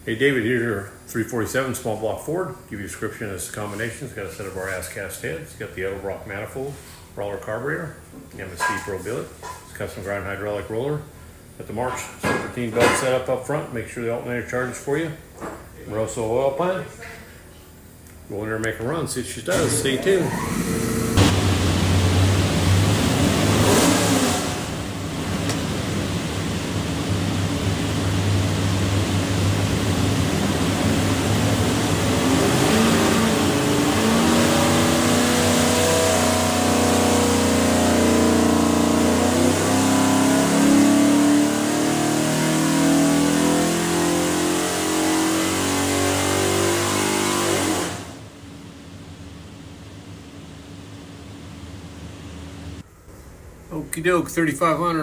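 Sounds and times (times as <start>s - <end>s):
car engine revving on a dyno: 19.5s - 52.8s.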